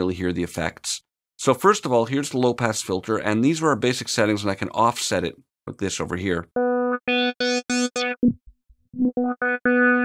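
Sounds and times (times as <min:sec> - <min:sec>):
filtered synth notes: 0:06.6 - 0:08.4, 0:09.0 - 0:10.0.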